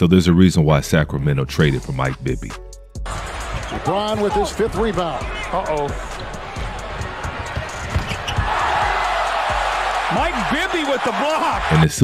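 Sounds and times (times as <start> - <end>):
crowd noise: 3.1 - 12.0.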